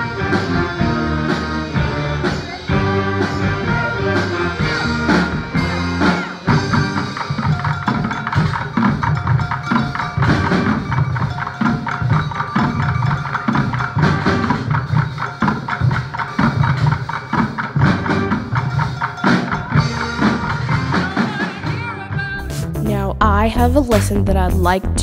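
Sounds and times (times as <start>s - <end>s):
bucket drumming: 0.0s - 25.0s
held pitched band notes: 0.0s - 25.0s.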